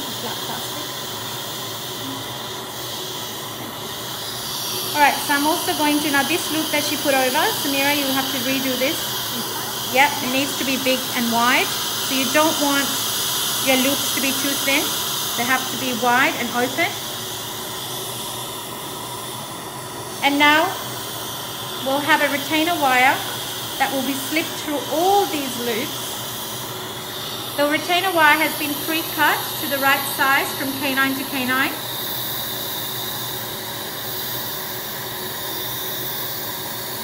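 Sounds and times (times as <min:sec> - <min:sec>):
dental suction hissing: 0:00.0 - 0:37.0.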